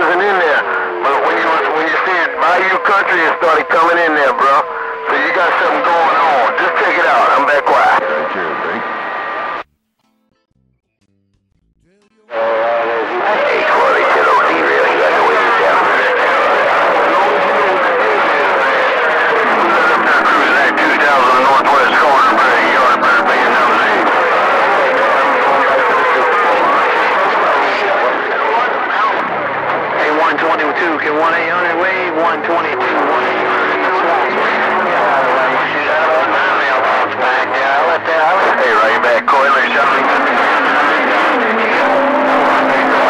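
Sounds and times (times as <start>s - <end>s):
hissy radio transmission: 0.0s - 9.6s, 12.3s - 43.0s.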